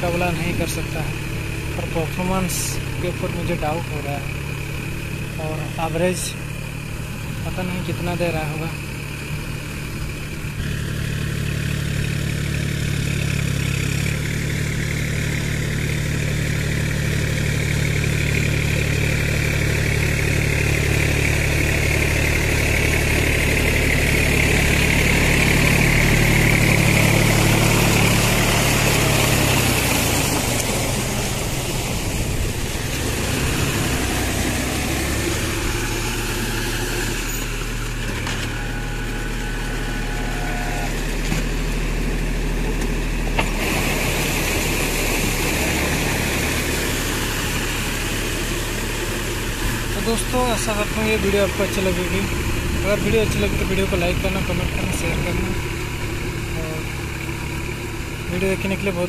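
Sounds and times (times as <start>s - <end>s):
tractor diesel engine running: 0.0s - 59.0s
mud and water churning: 0.1s - 59.0s.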